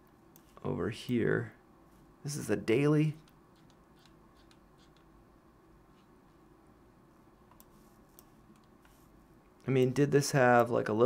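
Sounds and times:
person speaking: 0:00.4 - 0:01.6, 0:02.2 - 0:03.4, 0:09.6 - 0:11.0
computer mouse clicks: 0:03.2 - 0:05.1, 0:07.5 - 0:09.0.

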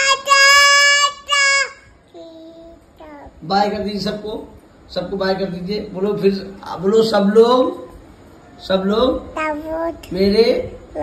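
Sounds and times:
toddler boy singing: 0:00.0 - 0:03.4.

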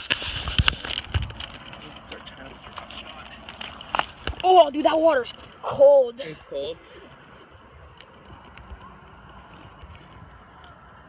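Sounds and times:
water and handling noise: 0:00.0 - 0:11.0.

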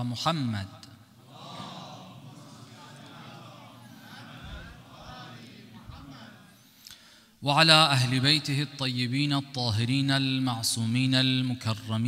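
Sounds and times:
murmur of voices: 0:01.2 - 0:06.8.

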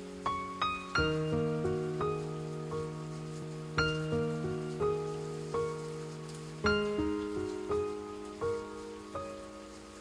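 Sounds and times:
slow soft piano notes: 0:00.0 - 0:10.0
steady rain-like hiss: 0:00.0 - 0:10.0.

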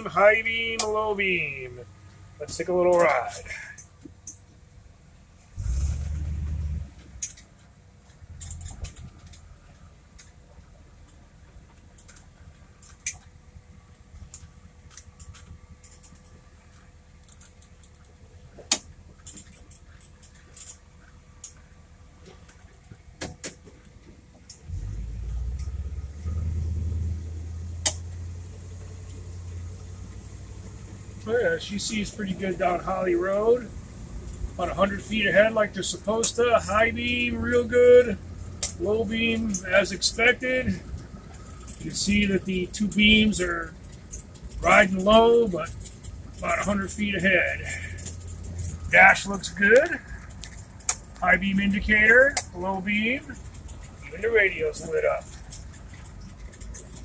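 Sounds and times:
car engine rumble from inside cabin: 0:00.0 - 0:57.0
small clicks and rattles: 0:07.0 - 0:26.5, 0:27.4 - 0:57.0.

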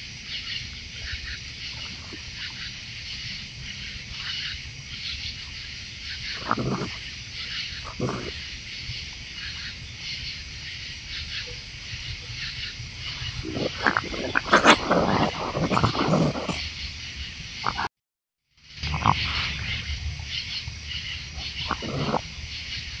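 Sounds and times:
raccoons growling and snarling: 0:00.0 - 0:16.8, 0:17.6 - 0:17.9, 0:18.8 - 0:23.0
night insects chirring: 0:00.0 - 0:17.9, 0:18.6 - 0:23.0.

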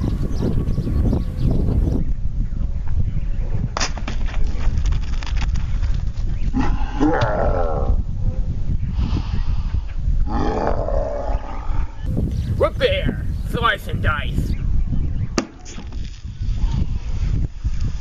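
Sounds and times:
wind on microphone: 0:00.0 - 0:18.0
sword striking plastic bottle: 0:03.8 - 0:04.2.

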